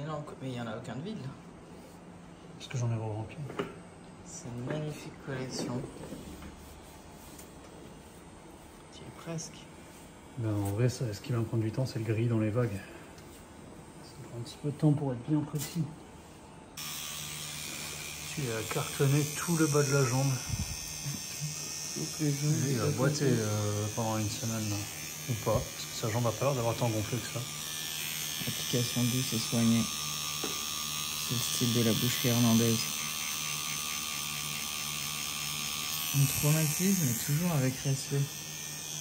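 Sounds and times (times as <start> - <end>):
tattoo machine humming: 16.8 - 39.0.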